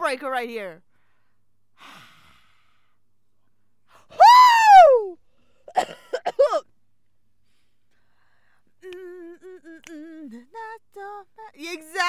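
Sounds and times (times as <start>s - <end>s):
woman squealing: 4.2s - 5.2s.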